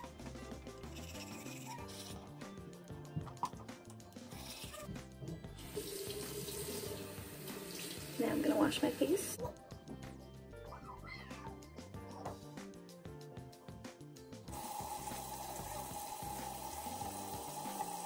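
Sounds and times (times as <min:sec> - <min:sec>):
background music: 0:00.0 - 0:18.0
tap running water into sink: 0:05.6 - 0:09.0, 0:14.5 - 0:18.0.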